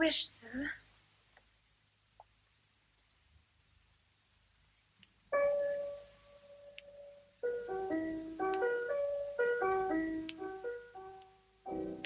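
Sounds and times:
piano playing simple tune: 5.3s - 12.0s.

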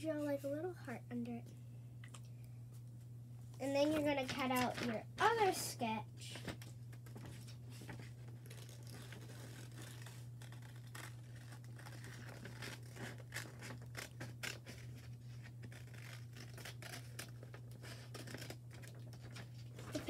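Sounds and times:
steady low hum: 0.0s - 20.0s
paper sheet rustling: 3.8s - 5.5s, 6.2s - 20.0s
scissors snipping paper: 8.5s - 20.0s.

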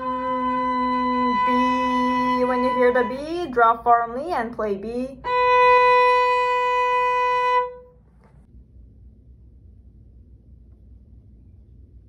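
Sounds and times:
violin bowed note: 0.0s - 3.8s, 5.2s - 8.0s.

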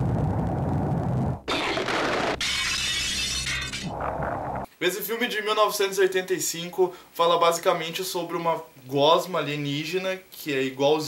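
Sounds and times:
low rumble: 0.0s - 1.5s, 3.8s - 4.7s
loud hissing crash: 1.5s - 4.3s.

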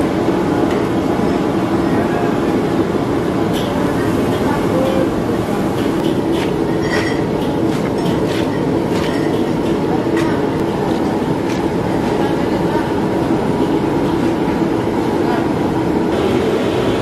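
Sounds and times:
loud rumbling noise: 0.0s - 17.0s.

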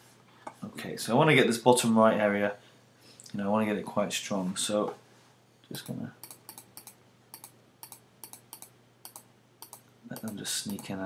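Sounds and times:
computer mouse clicks: 5.8s - 10.9s.

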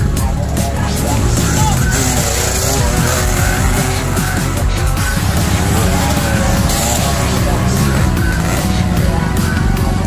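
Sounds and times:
background music: 0.0s - 10.0s
voices: 0.0s - 10.0s
dirt bike engine passing: 0.8s - 9.5s.

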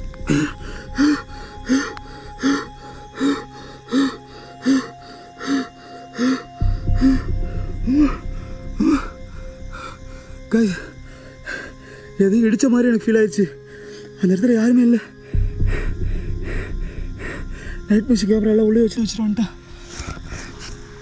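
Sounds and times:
low background music: 0.0s - 21.0s
person panting hard: 15.2s - 17.9s.

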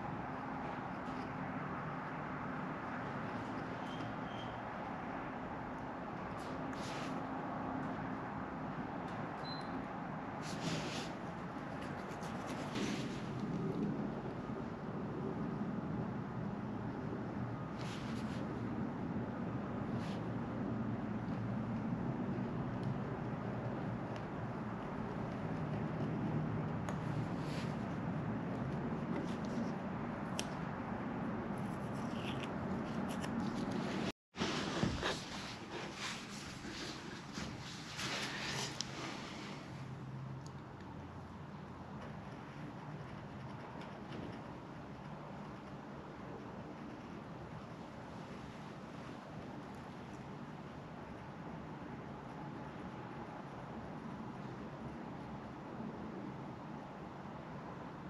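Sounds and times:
steady background noise: 0.0s - 58.0s.

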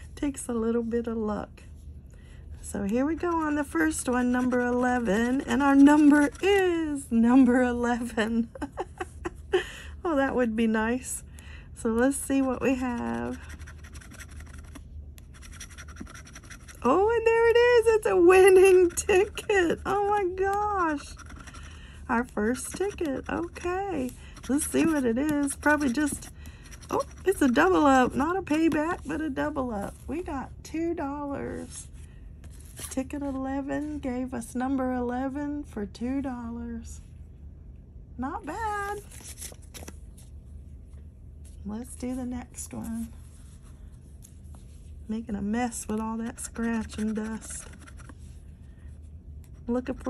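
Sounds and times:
low steady background hum: 0.0s - 50.0s
metal tool scraping lottery ticket: 12.7s - 17.0s, 20.7s - 21.7s, 46.3s - 48.1s.

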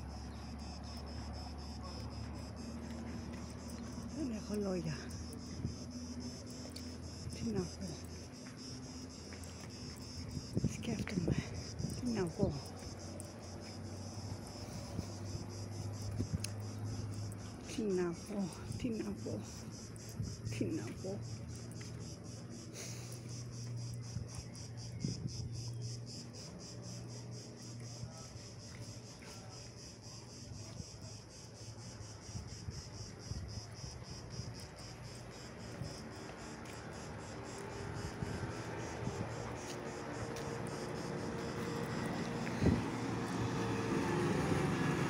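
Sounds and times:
insects singing: 0.0s - 45.0s.

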